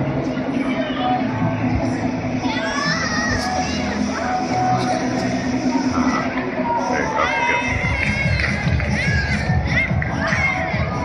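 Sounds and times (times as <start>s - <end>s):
echoing crowd hubbub: 0.0s - 11.0s
music playing: 0.0s - 11.0s.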